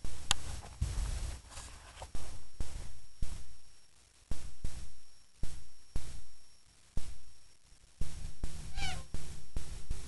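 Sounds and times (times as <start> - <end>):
meow-like animal call: 8.7 - 9.1.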